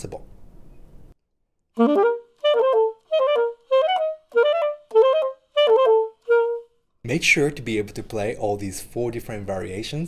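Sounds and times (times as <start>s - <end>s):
alto saxophone fast note flurries: 1.8s - 6.7s.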